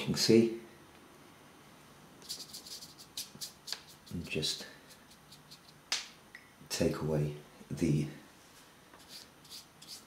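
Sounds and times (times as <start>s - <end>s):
brush bristles scratching on paper: 2.2s - 5.8s, 9.0s - 10.0s.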